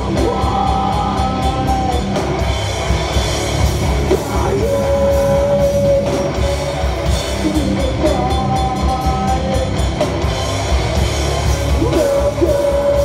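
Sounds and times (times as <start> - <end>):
live metal band playing: 0.0 - 13.0.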